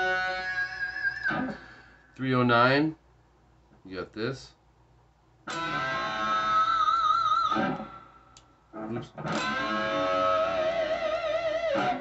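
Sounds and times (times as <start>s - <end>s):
electric guitar notes with vibrato: 0.0s - 1.7s, 5.5s - 8.0s, 8.8s - 12.0s.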